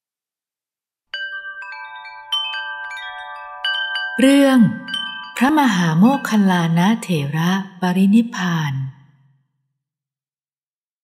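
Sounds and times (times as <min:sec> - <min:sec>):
chimes ringing: 0:01.2 - 0:07.4.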